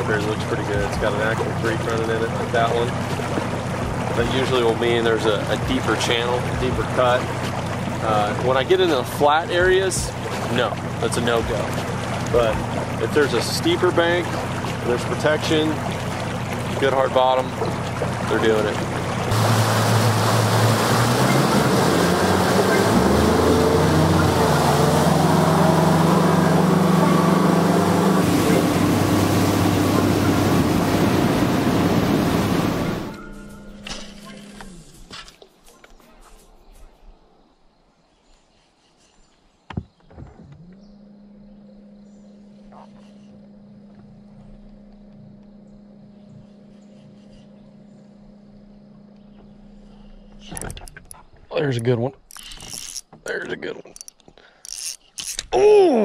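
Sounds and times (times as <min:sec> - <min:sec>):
electric trolling motor humming: 0:00.0 - 0:35.1, 0:40.4 - 0:51.4
outboard motor running at speed: 0:00.0 - 0:35.1, 0:39.8 - 0:52.5
rush of wind and wake: 0:00.8 - 0:33.3.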